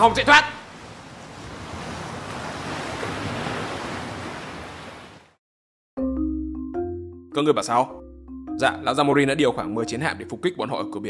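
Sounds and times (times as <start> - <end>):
ocean surf: 0.0 - 5.4.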